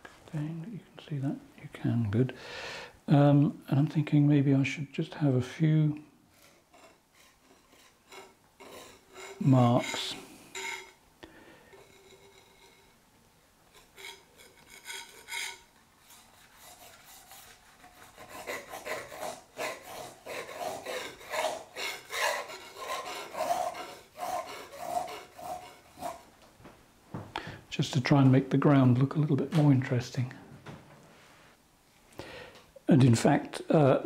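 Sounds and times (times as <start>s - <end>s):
palette knife scraping paint: 6.4s - 11.0s, 13.7s - 26.2s.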